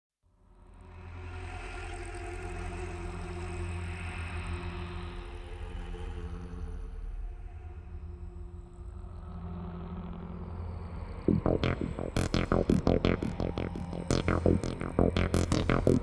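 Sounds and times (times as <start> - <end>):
low electronic drone: 11.3 - 16.0
sustained synth tones: 11.3 - 16.0.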